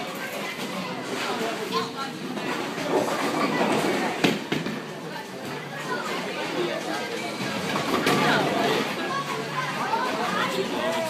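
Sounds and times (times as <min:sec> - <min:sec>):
bowling balls rolling: 0:02.2 - 0:05.0, 0:06.2 - 0:10.2.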